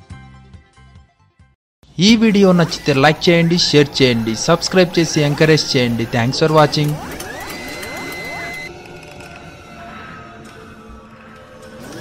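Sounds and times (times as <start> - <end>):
rising synth sweep tones: 2.8 - 8.7
rapid mechanical clicks: 4.4 - 9.4.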